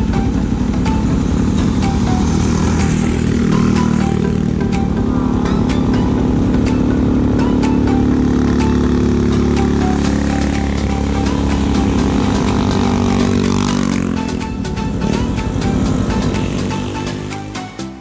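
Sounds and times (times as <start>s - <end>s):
motorcycle passing close by: 0.0s - 17.8s
background music with steady beat: 0.0s - 18.0s
small motorcycle engines running: 0.0s - 18.0s.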